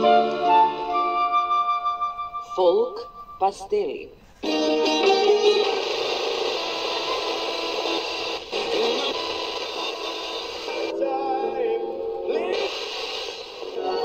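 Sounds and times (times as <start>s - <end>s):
radio music through loudspeaker: 2.6s - 14.0s.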